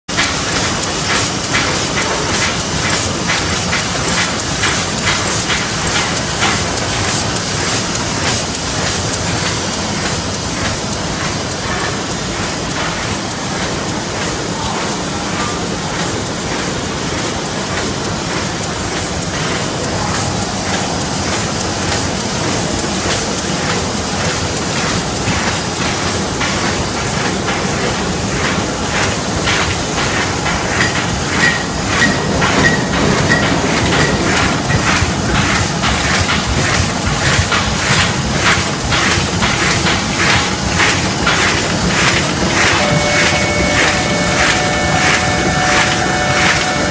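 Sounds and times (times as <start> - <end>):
die-cutting machine clattering: 0.1 - 46.9.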